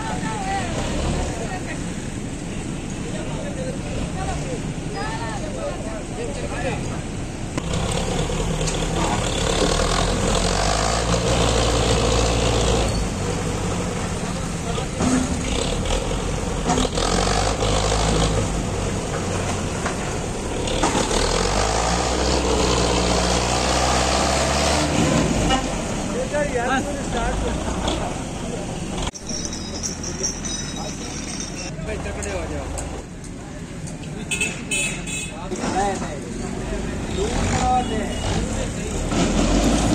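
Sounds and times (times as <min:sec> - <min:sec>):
tractor diesel engine under load: 0:00.0 - 0:34.0, 0:35.6 - 0:39.9.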